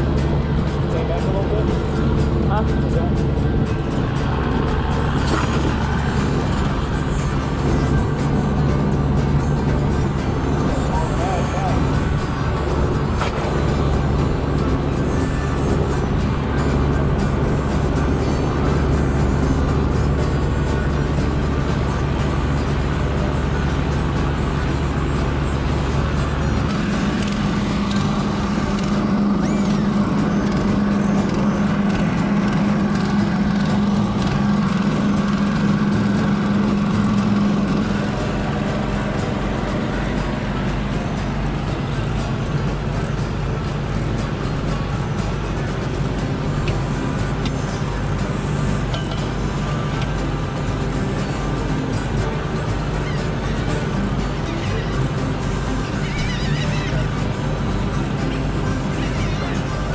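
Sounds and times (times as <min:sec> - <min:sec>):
boat engine humming: 0:00.0 - 0:59.9.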